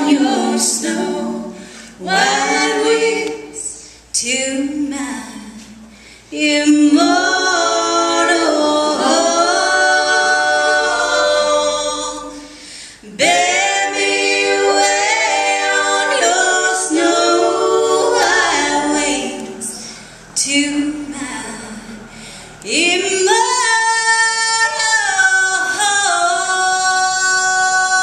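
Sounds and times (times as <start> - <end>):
group singing in harmony: 0.0 - 28.0.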